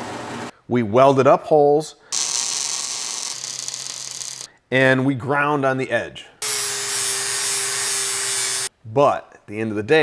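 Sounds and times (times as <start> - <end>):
welder arc crackling and hissing: 2.2 - 4.5.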